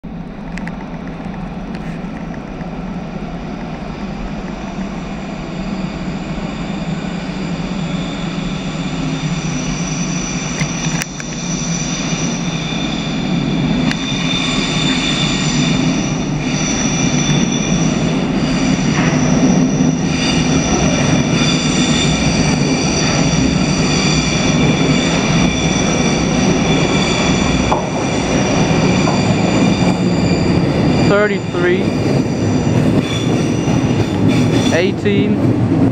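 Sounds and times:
metro train approaching in tunnel: 0:00.0 - 0:35.9
high-pitched whining tones: 0:04.0 - 0:35.2.

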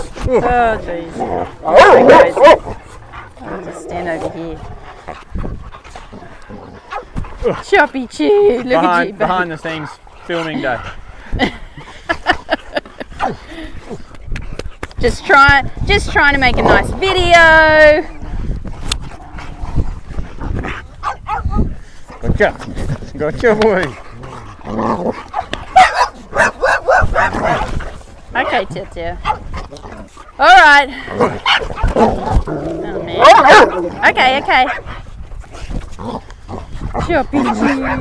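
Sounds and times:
dogs playing: 0:00.0 - 0:38.0
dogs whining and yipping: 0:33.1 - 0:33.8.

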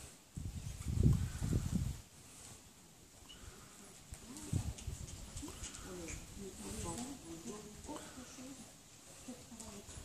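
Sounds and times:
horse hooves thudding on sand: 0:04.0 - 0:07.9.

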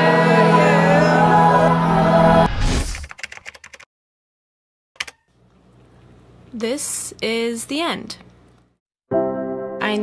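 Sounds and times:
choral music: 0:00.0 - 0:02.6
keyboard typing clicks: 0:05.0 - 0:05.2.

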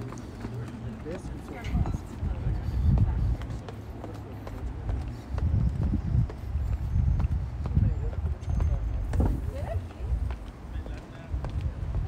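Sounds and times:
faint voices: 0:00.0 - 0:12.0
footsteps on pavement: 0:00.0 - 0:12.0.

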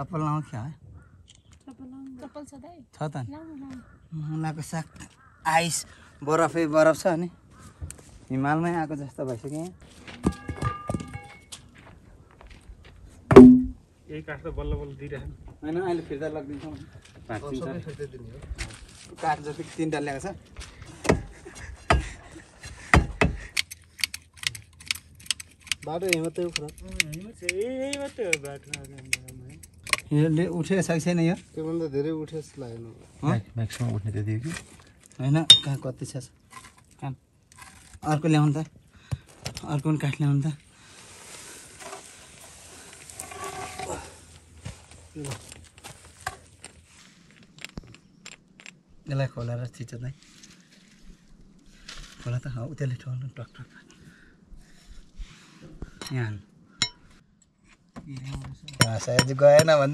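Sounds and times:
quick metallic clicks of hand tool: 0:23.5 - 0:30.0.

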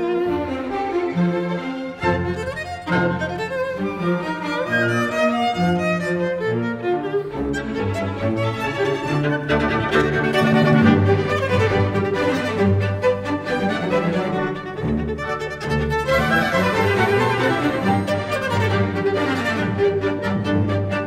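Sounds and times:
solo viola: 0:00.0 - 0:21.0
symphony orchestra playing: 0:00.0 - 0:21.0.

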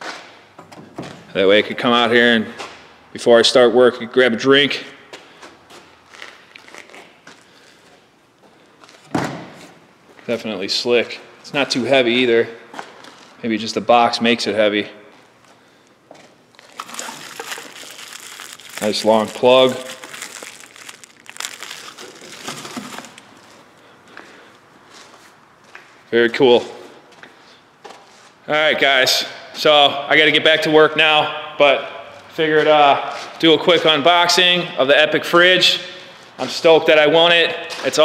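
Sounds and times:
plastic packaging crinkling: 0:06.0 - 0:07.2, 0:16.5 - 0:23.8.

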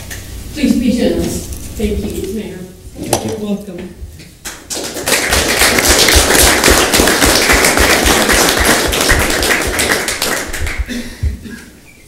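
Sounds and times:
people applauding: 0:04.5 - 0:10.9.

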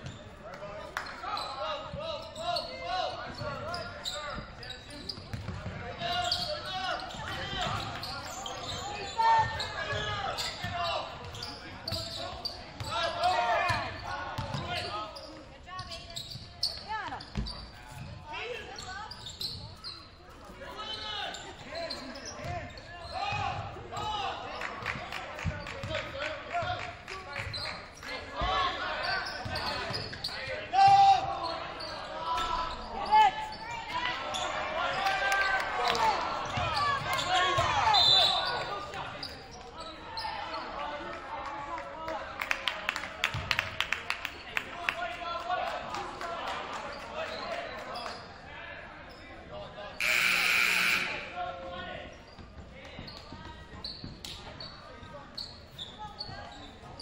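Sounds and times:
sneakers squeaking on court: 0:00.0 - 0:00.4, 0:01.0 - 0:24.1, 0:27.4 - 0:30.6, 0:36.4 - 0:40.4, 0:52.0 - 0:57.0
players shouting: 0:50.0 - 0:51.6.

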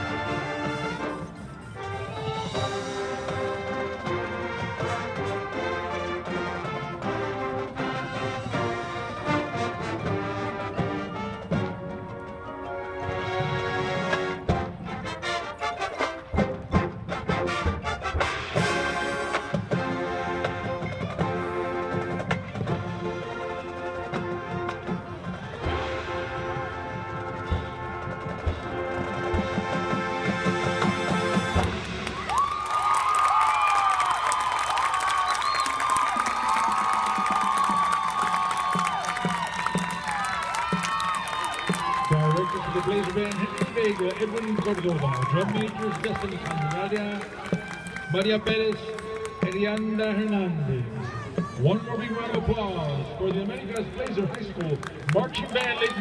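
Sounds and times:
marching band playing: 0:00.0 - 0:56.0
crowd cheering and shouting: 0:32.0 - 0:56.0.

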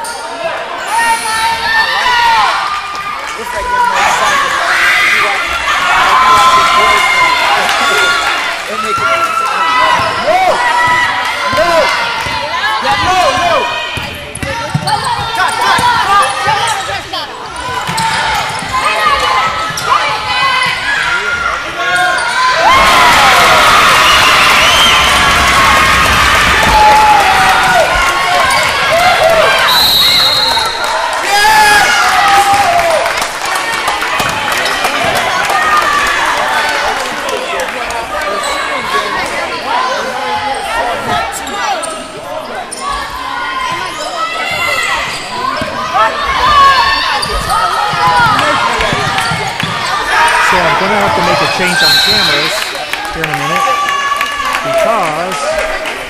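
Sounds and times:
players and spectators shouting: 0:00.0 - 0:56.0
ball bouncing on hardwood court: 0:13.0 - 0:16.7.

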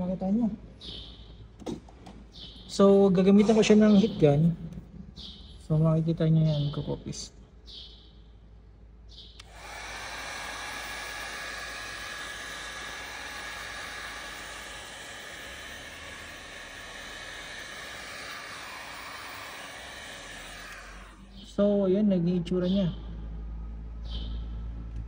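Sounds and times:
heat gun blowing: 0:09.4 - 0:21.4
high fan whine: 0:09.4 - 0:21.8.

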